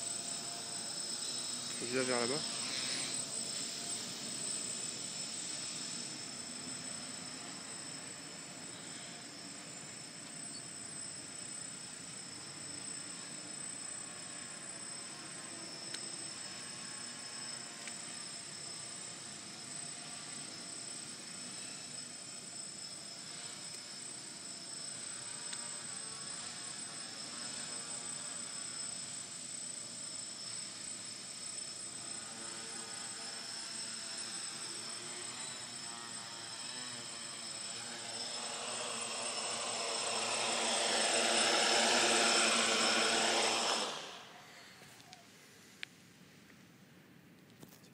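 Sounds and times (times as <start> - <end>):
quadcopter motors buzzing: 0.0 - 46.0.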